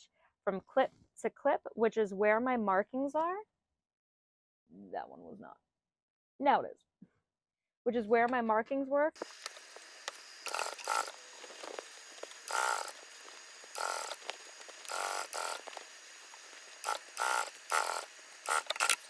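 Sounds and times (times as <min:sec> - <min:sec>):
faint steady hum: 0:09.2 - 0:19.0
sewing machine stitching: 0:10.4 - 0:11.8, 0:12.4 - 0:13.0, 0:13.7 - 0:15.8, 0:16.8 - 0:19.0.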